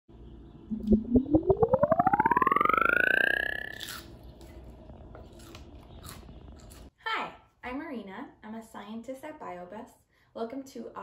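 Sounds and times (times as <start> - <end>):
rising pulsing tone: 0.7 - 4.0.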